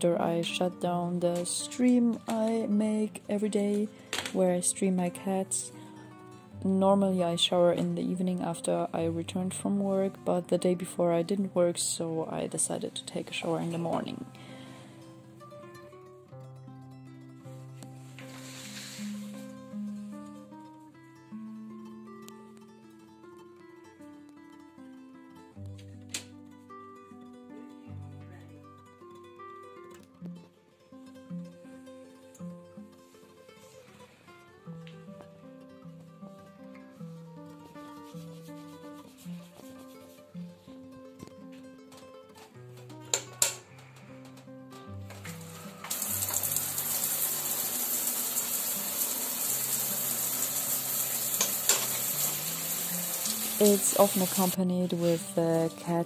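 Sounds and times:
soft music with plucked notes: 0:00.0 - 0:56.0
shower head spraying water: 0:45.4 - 0:54.6.

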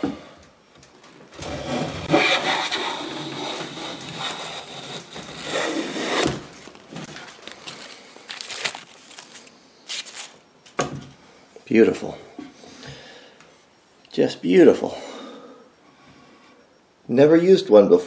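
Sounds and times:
hand plane scraping wood: 0:01.4 - 0:06.3.

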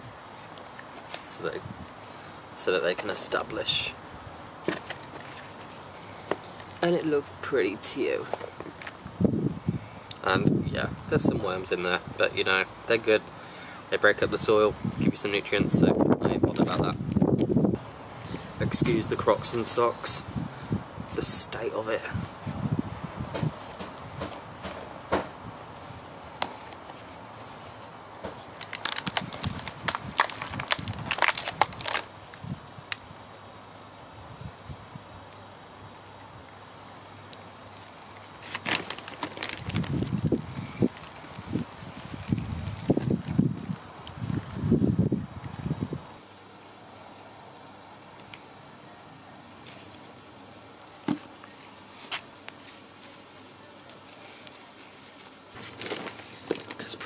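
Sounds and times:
soil crackling and rustling: 0:00.0 - 0:57.0
plastic pot being handled: 0:54.1 - 0:57.0.

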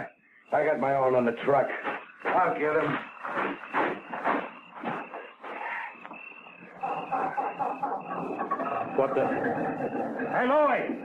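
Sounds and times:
knocks: 0:01.7 - 0:11.0.

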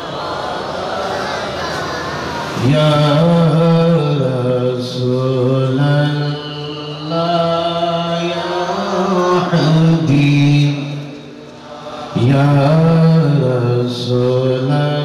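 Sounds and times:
man chanting into microphone: 0:02.5 - 0:15.0.

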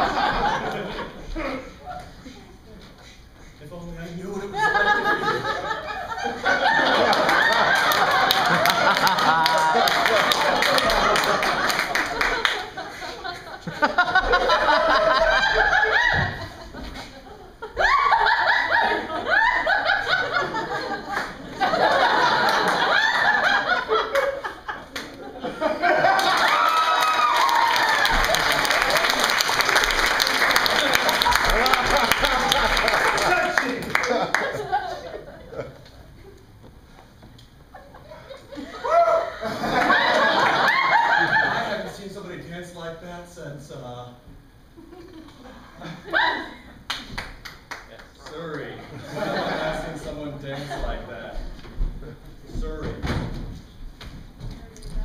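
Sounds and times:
audience laughing: 0:00.0 - 0:03.2, 0:04.4 - 0:36.4, 0:37.7 - 0:42.1, 0:48.4 - 0:51.4
hand claps: 0:07.2 - 0:12.7, 0:26.2 - 0:34.6, 0:46.9 - 0:48.5
person whooping: 0:26.4 - 0:28.5, 0:38.6 - 0:39.4.

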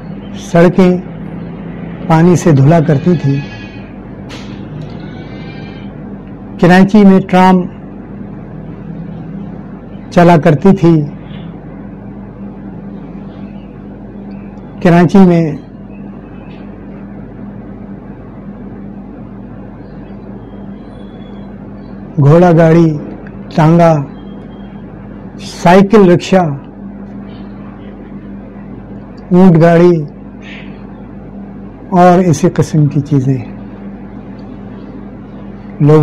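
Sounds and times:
steady low hum: 0:00.0 - 0:36.0
man speaking: 0:02.1 - 0:03.5, 0:06.6 - 0:07.8, 0:10.1 - 0:11.2, 0:14.8 - 0:15.7, 0:22.2 - 0:24.2, 0:25.4 - 0:26.7, 0:29.3 - 0:30.2, 0:31.9 - 0:33.6, 0:35.8 - 0:36.0.

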